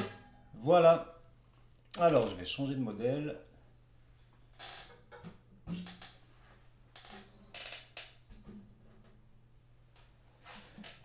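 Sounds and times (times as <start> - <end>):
knocks on guitar bodies: 0.0 - 0.4
guitar strings ringing: 0.0 - 0.7.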